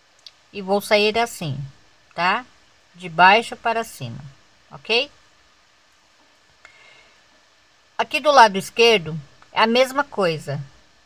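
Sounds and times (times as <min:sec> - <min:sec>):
faint click: 0:00.2 - 0:00.4, 0:05.9 - 0:06.8.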